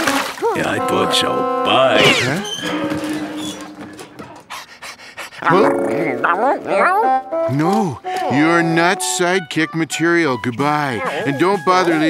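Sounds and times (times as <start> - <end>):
cartoon dog barking: 5.4 - 7.2.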